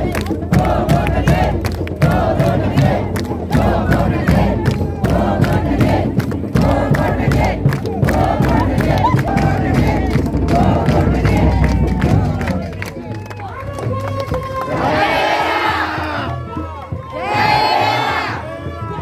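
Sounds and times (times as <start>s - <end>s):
hand clapping: 0.0s - 14.7s
women chanting and shouting: 0.0s - 16.4s.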